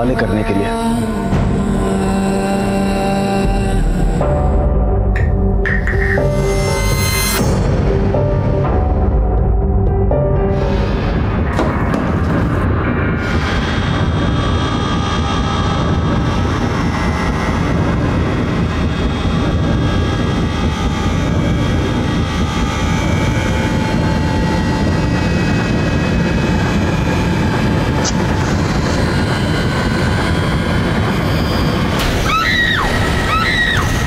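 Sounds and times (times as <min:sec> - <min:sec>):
low rumbling drone: 0:00.0 - 0:34.0.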